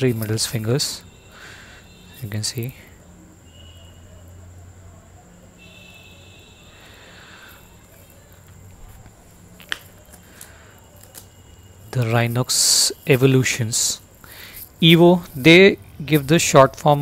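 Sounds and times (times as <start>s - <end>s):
faint high whine: 0.0s - 17.0s.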